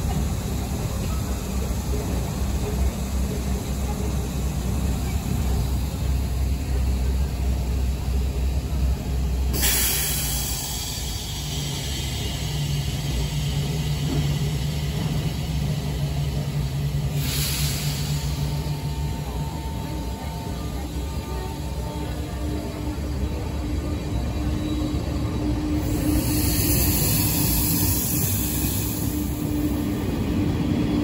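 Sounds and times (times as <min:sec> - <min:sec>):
train low rumble: 0:00.0 - 0:31.0
compressed-air hiss: 0:09.5 - 0:13.6, 0:17.1 - 0:18.4.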